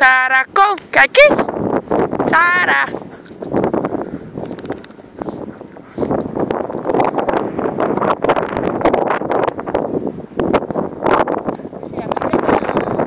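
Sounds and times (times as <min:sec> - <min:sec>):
wind buffeting the microphone: 0:00.0 - 0:13.0.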